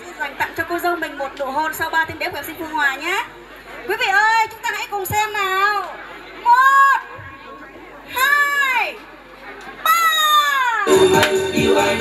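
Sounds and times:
music: 0:10.9 - 0:12.0.

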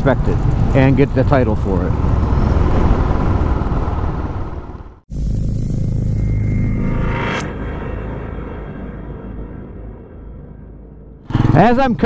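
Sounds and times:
wind noise: 0:00.0 - 0:05.0
motorcycle engine: 0:00.1 - 0:07.0, 0:11.2 - 0:12.0
whoosh: 0:01.6 - 0:09.8.

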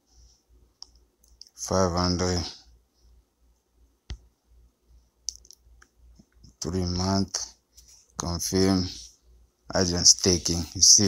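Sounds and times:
faint clicks: 0:00.8 - 0:01.6, 0:05.2 - 0:06.6.

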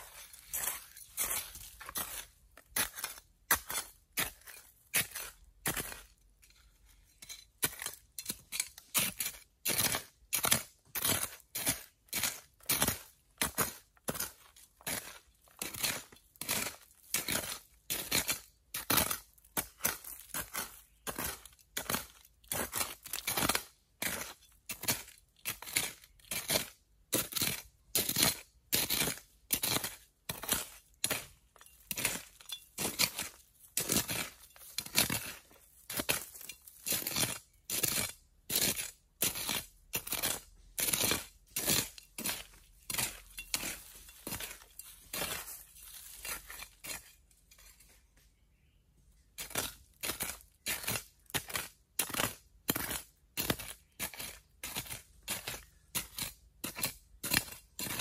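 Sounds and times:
metal tool scraping into dry soil: 0:00.0 - 0:48.2, 0:49.2 - 0:58.0.

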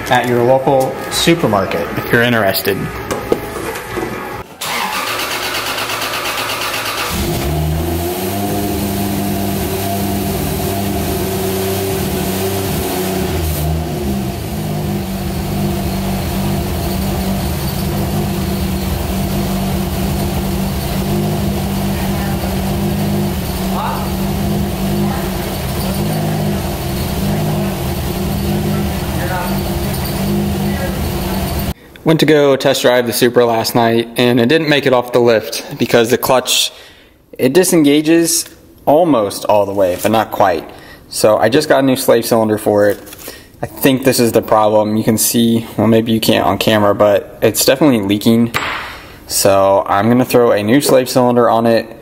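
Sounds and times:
car engine starting and idling: 0:04.6 - 0:31.8.

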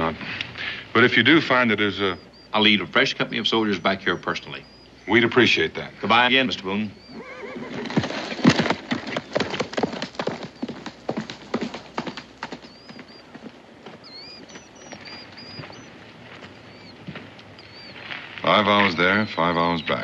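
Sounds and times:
horse hooves clattering: 0:06.3 - 0:20.0.

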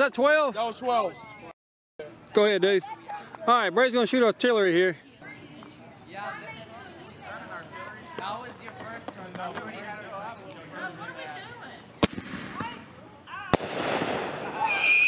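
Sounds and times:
firework bangs: 0:12.0 - 0:12.8, 0:13.5 - 0:15.0
firework hiss: 0:13.5 - 0:15.0.

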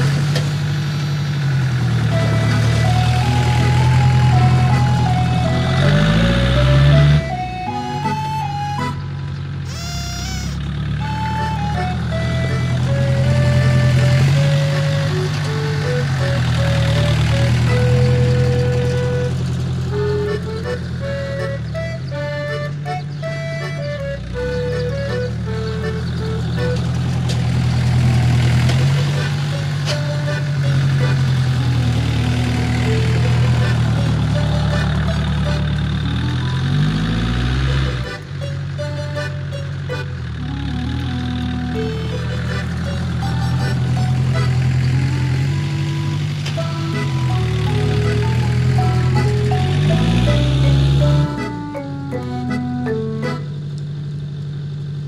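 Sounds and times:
tractor engine revving: 0:00.0 - 0:55.0
background music: 0:02.0 - 0:09.3, 0:11.0 - 0:26.8, 0:28.9 - 0:53.6.

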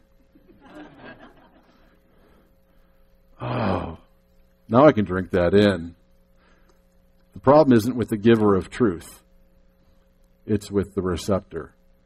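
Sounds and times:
congregation chuckling and laughing: 0:00.2 - 0:02.0.

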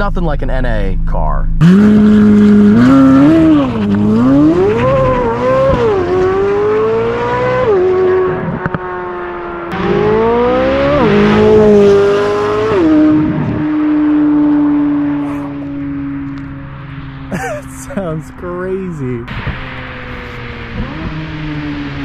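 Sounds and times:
sports car accelerating past: 0:01.6 - 0:17.3, 0:19.2 - 0:22.0.

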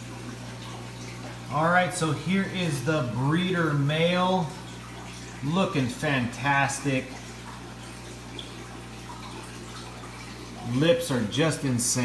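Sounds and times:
aquarium filter water rushing: 0:00.0 - 0:12.0
low steady hum: 0:00.0 - 0:12.0.

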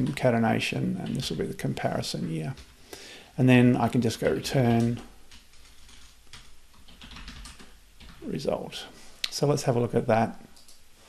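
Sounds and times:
low steady hum: 0:00.0 - 0:11.0
computer keyboard clicks: 0:04.2 - 0:08.2.

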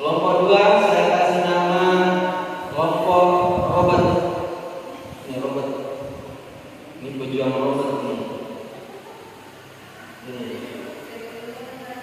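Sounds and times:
man chanting through loudspeaker: 0:00.0 - 0:04.6
faint room noise: 0:00.0 - 0:12.0.

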